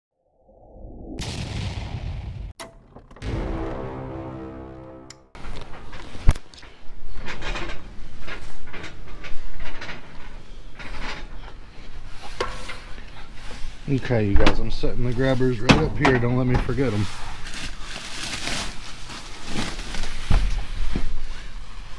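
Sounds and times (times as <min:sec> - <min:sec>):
intro music: 0:03.1 - 0:05.4
rustling of trash bags: 0:12.0 - 0:21.9.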